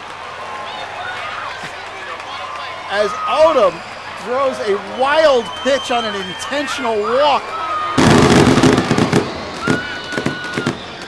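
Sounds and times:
high whistle-like tone: 0:04.6 - 0:06.9.

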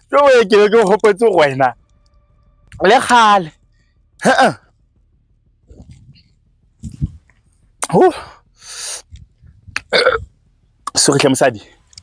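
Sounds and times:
woman burping loudly: 0:09.8 - 0:10.3.

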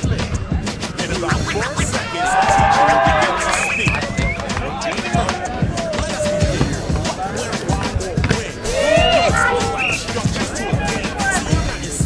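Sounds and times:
music playing: 0:00.0 - 0:12.0
voices shouting: 0:01.8 - 0:07.4, 0:08.6 - 0:11.5.

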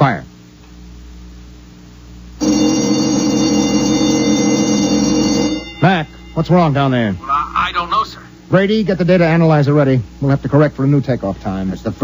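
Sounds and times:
faint hum: 0:00.0 - 0:12.0
ringing alarm tone: 0:02.4 - 0:07.2.

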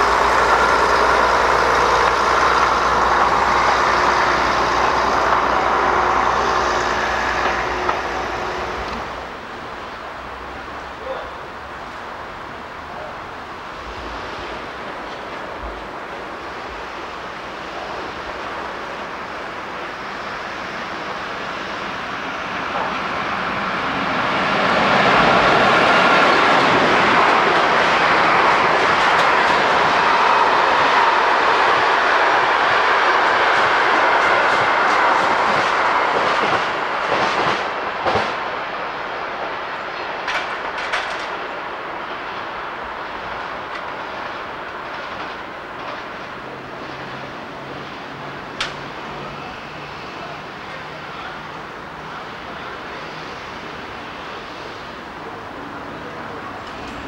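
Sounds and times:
train wheels rumbling on rail: 0:00.0 - 0:57.0
wheels clicking over rail joints: 0:25.1 - 0:31.0, 0:39.9 - 0:42.5, 0:48.6 - 0:49.2, 0:56.0 - 0:57.0.

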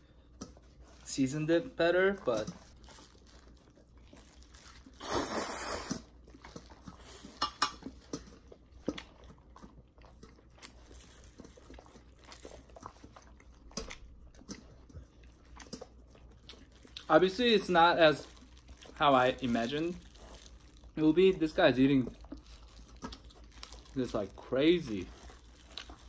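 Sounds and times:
chewing with wet smacks: 0:01.9 - 0:05.1, 0:05.8 - 0:26.0
person slurping noodles: 0:05.0 - 0:06.2.

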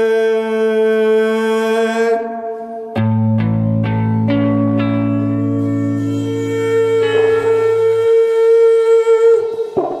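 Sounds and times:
garage blues band playing: 0:02.9 - 0:10.0
sustained high note: 0:04.4 - 0:10.0.

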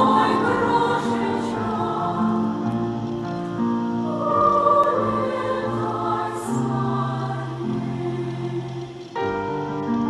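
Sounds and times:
choir singing sustained chords: 0:00.0 - 0:10.0.

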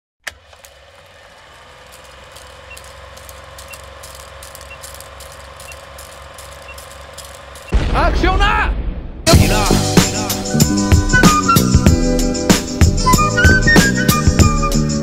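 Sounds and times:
crackling clicks: 0:00.2 - 0:07.8
short faint beeps: 0:06.6 - 0:07.0.

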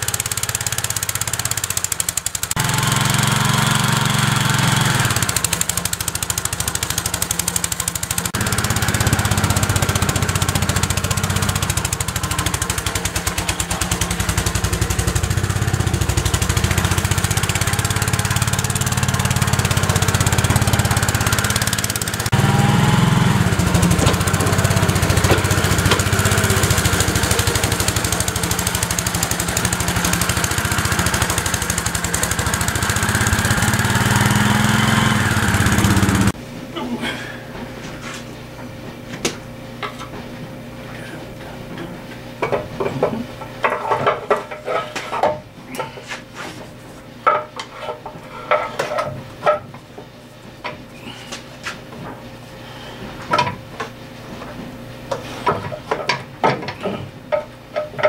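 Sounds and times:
snowblower engine running: 0:00.0 - 0:36.4.

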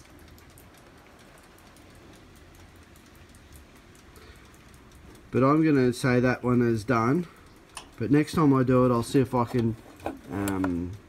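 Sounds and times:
light irregular ticking: 0:00.0 - 0:11.0.

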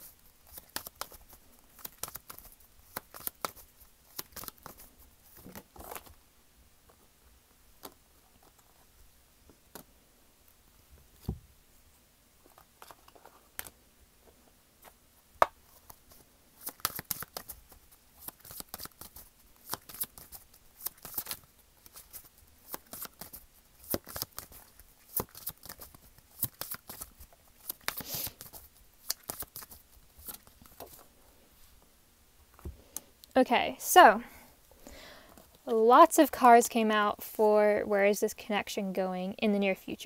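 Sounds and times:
cards being shuffled: 0:00.0 - 0:06.2, 0:12.4 - 0:13.8, 0:14.8 - 0:31.1.

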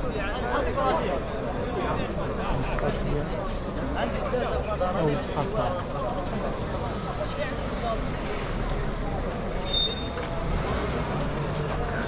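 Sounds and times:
faint voices: 0:00.0 - 0:12.0
low city rumble: 0:00.0 - 0:12.0.

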